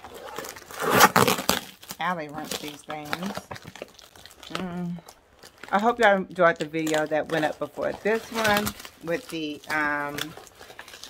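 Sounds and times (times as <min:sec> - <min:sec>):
packing tape ripping off cardboard: 0:00.0 - 0:04.7, 0:05.4 - 0:11.0.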